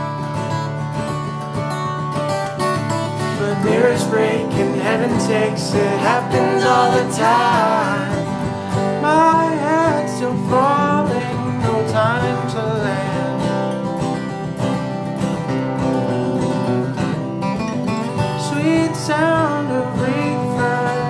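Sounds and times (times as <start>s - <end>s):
acoustic guitars strumming: 0.0s - 21.0s
man singing: 3.3s - 13.5s, 18.3s - 21.0s.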